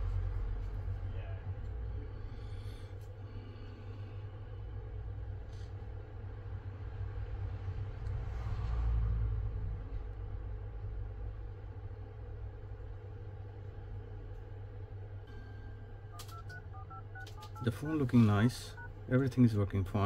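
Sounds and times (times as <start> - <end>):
low background rumble: 0.0 - 20.0
phone keypad two-tone beeps: 16.1 - 17.8.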